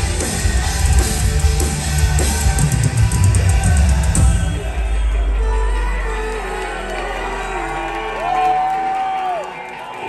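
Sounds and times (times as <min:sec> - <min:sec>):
heavy distorted guitar: 0:00.0 - 0:07.5.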